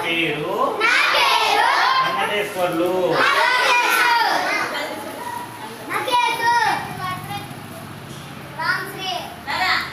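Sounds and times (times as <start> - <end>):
children speaking and calling out: 0.8 - 2.2, 3.0 - 9.9.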